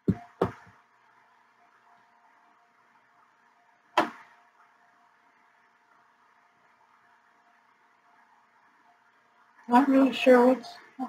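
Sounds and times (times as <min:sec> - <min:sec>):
thin steady hum: 0:00.0 - 0:11.0
sharp knock: 0:04.0 - 0:04.3.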